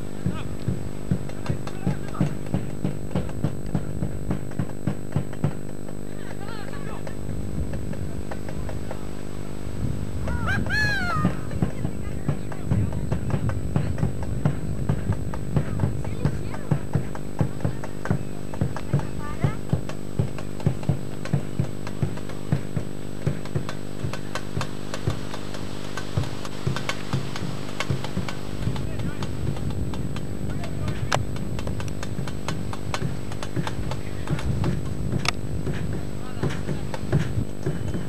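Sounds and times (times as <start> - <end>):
constant hum: 0.0 - 38.0
dense low noise: 0.0 - 38.0
drum beating steady rhythm: 0.0 - 38.0
voices in background: 5.8 - 38.0.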